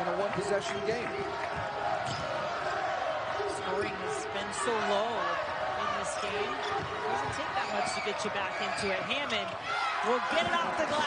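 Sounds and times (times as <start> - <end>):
crowd noise in large hall: 0.0 - 11.0.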